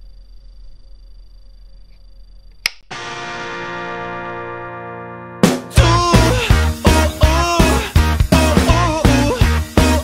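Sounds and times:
faint high whine: 0.0 - 3.2
guitar amplifier humming: 0.0 - 10.0
sharp click: 2.6 - 2.9
electric guitar chord ringing: 2.9 - 8.1.

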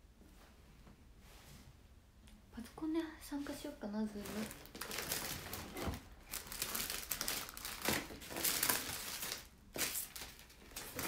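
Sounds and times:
crinkling and rustling: 3.4 - 11.0.

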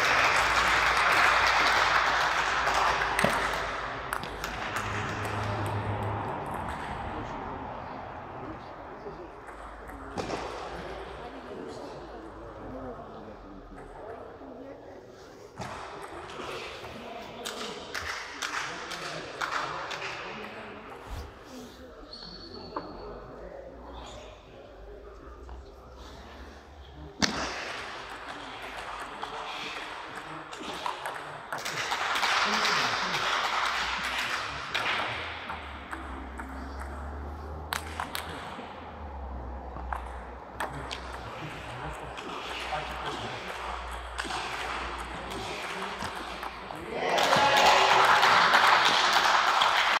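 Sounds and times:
audience applause: 0.0 - 5.9, 47.0 - 50.0
low background murmur: 0.0 - 50.0.

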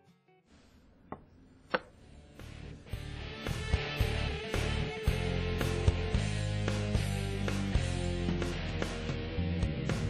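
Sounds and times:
music: 0.0 - 0.6, 2.0 - 10.0.

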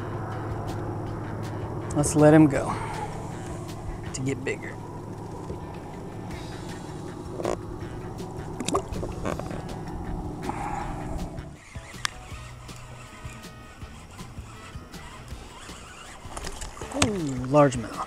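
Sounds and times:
music with sustained tones: 0.0 - 18.0
sharp clicks: 3.4 - 10.4, 11.2 - 18.0.

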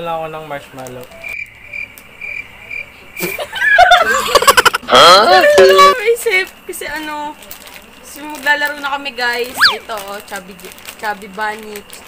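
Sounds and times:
cricket chirps: 1.2 - 4.6
people laughing: 3.2 - 4.9.

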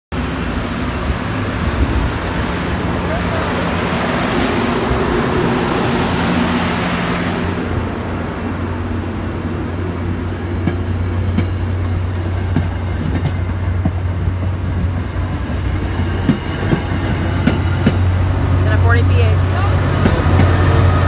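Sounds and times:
train coaches rumbling past: 0.1 - 21.0.

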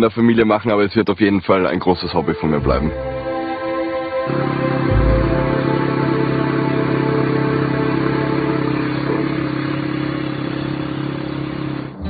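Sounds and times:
quad engine running: 4.3 - 12.0.

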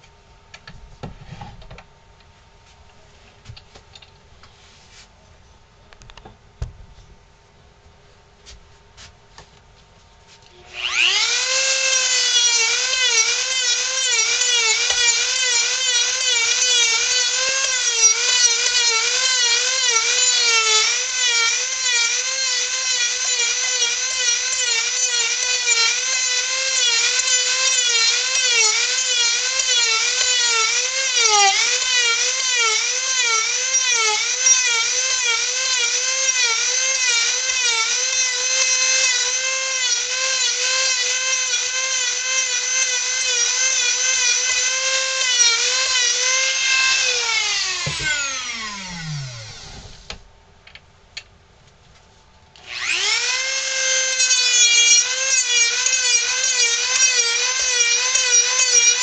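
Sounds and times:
rotary tool whining on wood: 10.4 - 50.2, 52.6 - 59.0.

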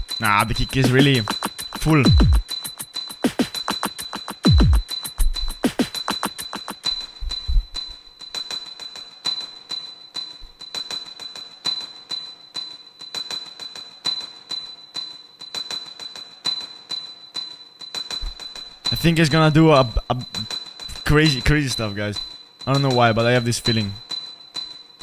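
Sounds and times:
steady high tone: 0.0 - 7.8
beatbox hi-hat clicks: 0.0 - 7.9.

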